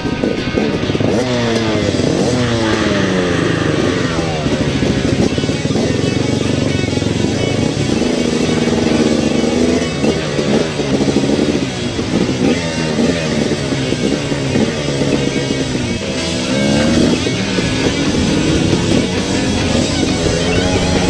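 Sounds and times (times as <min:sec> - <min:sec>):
dirt bike engines revving: 0:00.0 - 0:21.0
rock music: 0:00.0 - 0:21.0.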